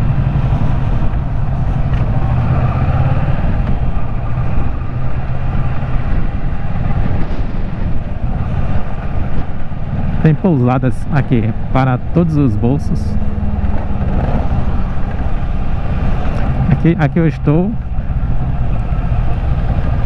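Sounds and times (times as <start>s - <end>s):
wind and road noise: 0.0s - 20.0s.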